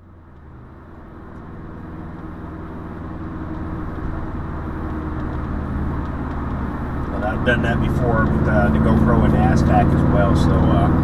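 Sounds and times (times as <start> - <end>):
car engine and road drone: 0.0 - 11.0.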